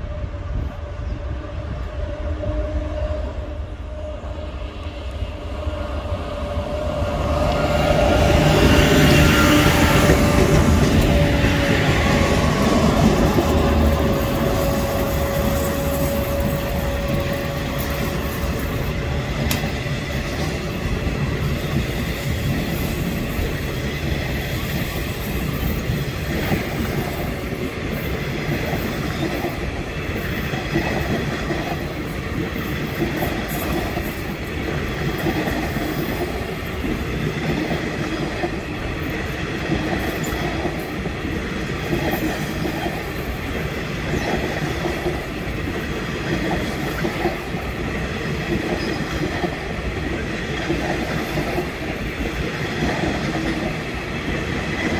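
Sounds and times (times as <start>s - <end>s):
electric locomotive whine: 0.0s - 54.9s
train wheels rumbling on rail: 0.0s - 54.9s.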